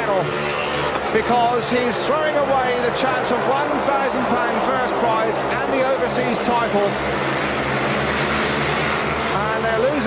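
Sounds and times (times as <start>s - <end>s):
motorcycle engines racing: 0.0s - 10.0s.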